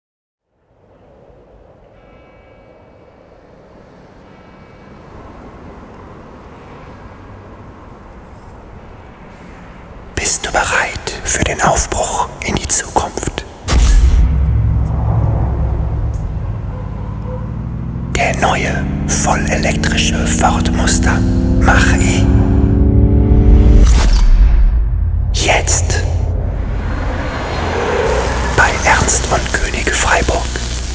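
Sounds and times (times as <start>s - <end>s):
rush of noise: 3.5s - 30.9s
low steady rumbling: 13.7s - 30.9s.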